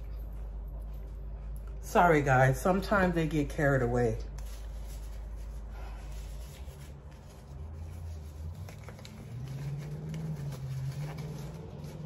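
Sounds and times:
low steady hum: 0.0s - 12.0s
plastic glove crinkling: 4.1s - 12.0s.

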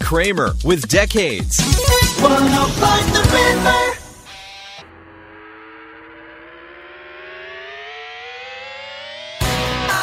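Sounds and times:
rising synthesizer tone: 1.8s - 10.0s.

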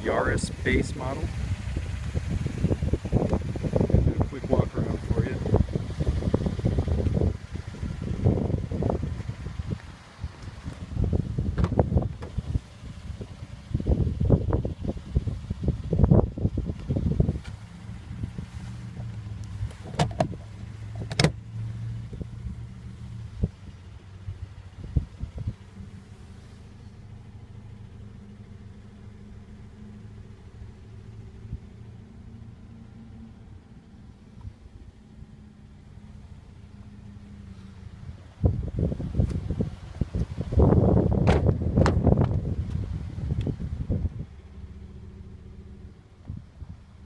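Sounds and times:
car engine idling hum: 0.0s - 47.0s
wind and handling on microphone: 1.7s - 21.4s, 37.5s - 44.4s.

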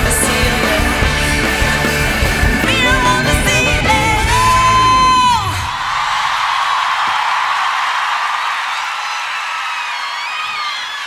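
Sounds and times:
audience cheering and whooping: 2.7s - 11.0s.

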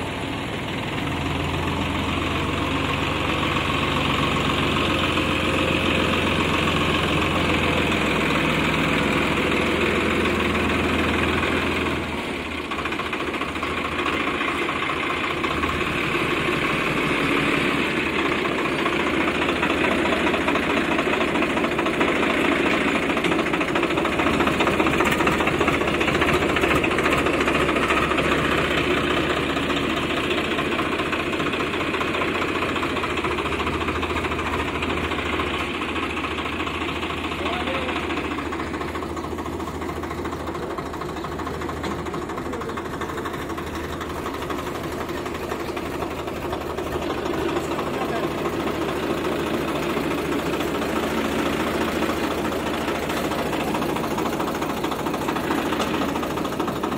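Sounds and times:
tractor diesel engine running: 0.0s - 56.9s.

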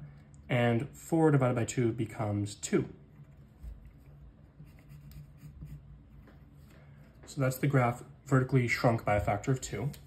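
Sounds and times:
pencil scratching on paper: 3.2s - 6.1s.

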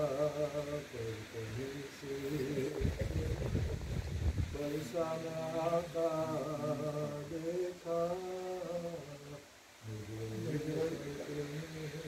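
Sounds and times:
man chanting an elegy: 4.6s - 12.0s.

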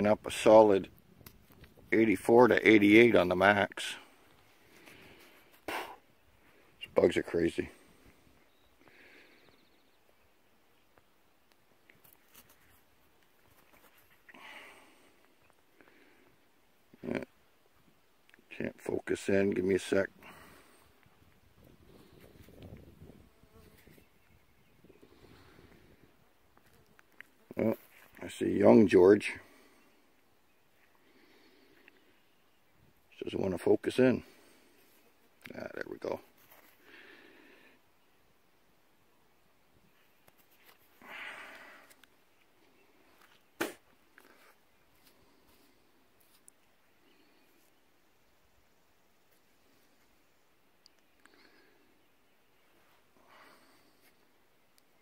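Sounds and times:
quiet outdoor background: 0.0s - 55.0s.

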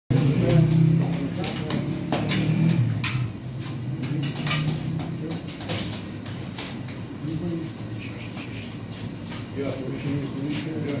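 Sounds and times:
sharp knocks and clatters: 0.7s - 7.0s
voices talking: 7.1s - 11.0s.

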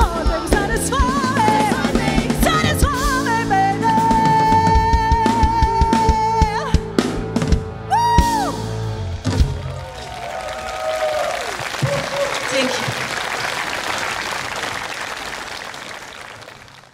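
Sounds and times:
live rock band playing: 0.0s - 10.0s
audience shouts and whoops: 7.8s - 8.7s, 9.3s - 13.5s
audience applauding: 9.1s - 16.9s.

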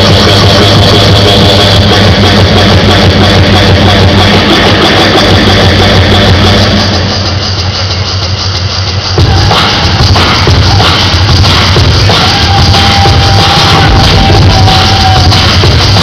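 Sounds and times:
electronic dance music: 0.0s - 16.0s
heavy bass drone: 0.0s - 16.0s
looped beatboxing: 0.0s - 16.0s.

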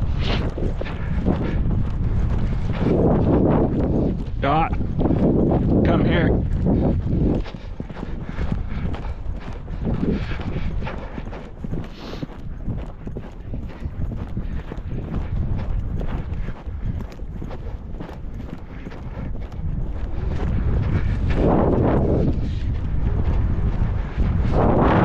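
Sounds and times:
horse hoofbeats on dry grass: 0.0s - 25.0s.

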